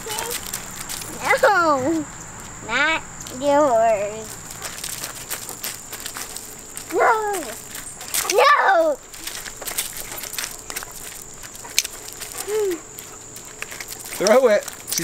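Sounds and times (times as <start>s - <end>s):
footsteps crunching on gravel: 0.0s - 15.0s
young child crying: 6.9s - 7.6s, 8.3s - 9.0s, 12.4s - 12.8s.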